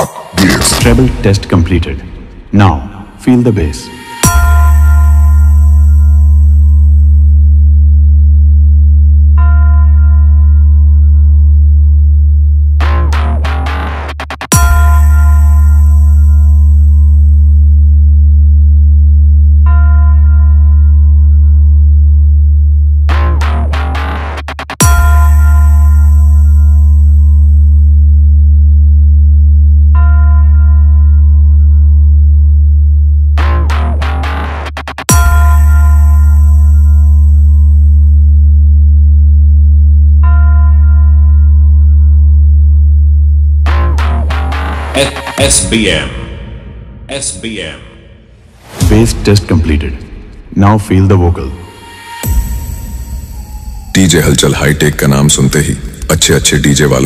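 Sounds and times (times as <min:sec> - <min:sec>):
deep bass drone: 0:00.0 - 0:47.2, 0:47.8 - 0:57.0.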